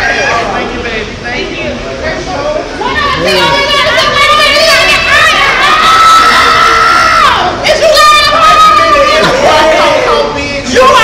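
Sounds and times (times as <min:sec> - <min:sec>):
excited high-pitched chatter: 0:02.8 - 0:11.0.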